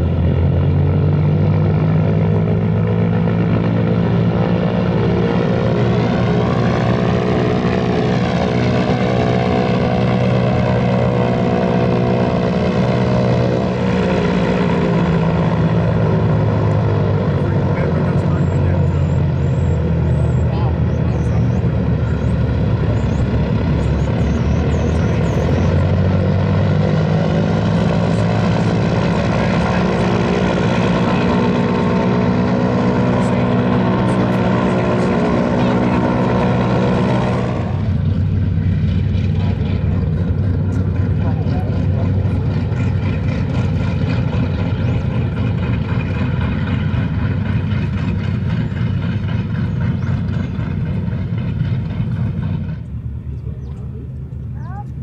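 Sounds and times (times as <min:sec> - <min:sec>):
piston aircraft engines droning: 0:00.0 - 0:55.0.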